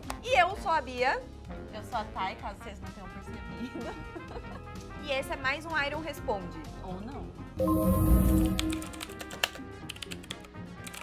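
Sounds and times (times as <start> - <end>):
background music: 0.0 - 11.0
keyboard typing clicks: 7.6 - 11.0.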